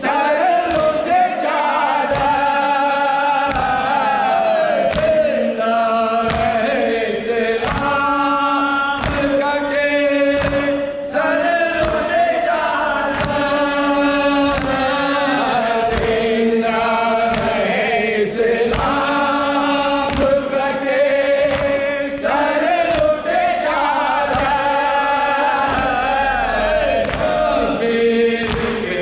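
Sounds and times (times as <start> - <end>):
men chanting a lament: 0.0 - 29.0
chest beating slaps: 0.6 - 1.3, 1.9 - 2.8, 3.4 - 5.6, 6.2 - 29.0.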